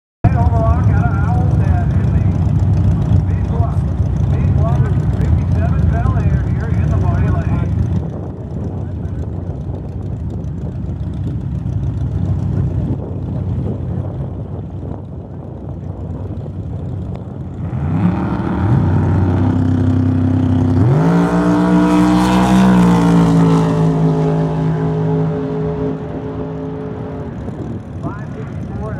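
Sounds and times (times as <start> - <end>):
drag racing cars engines revving: 0.3 - 28.9.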